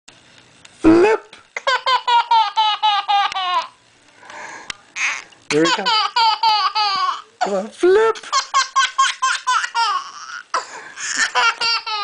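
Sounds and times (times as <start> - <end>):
baby laughing: 1.6 - 3.8, 5.0 - 7.3, 8.2 - 12.0.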